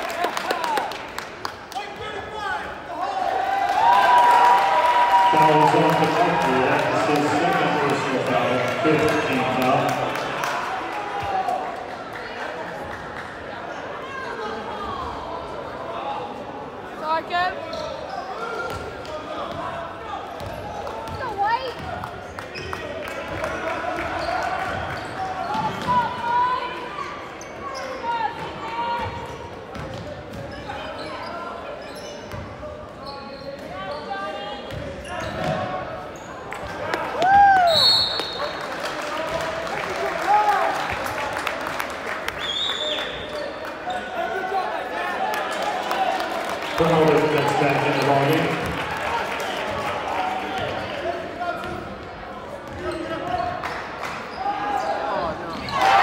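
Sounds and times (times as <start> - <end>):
crowd chatter: 5.3 - 42.4, 43.0 - 56.0
basketball bouncing on court: 29.0 - 30.6
shoe squeals: 30.5 - 36.4, 37.6 - 38.5.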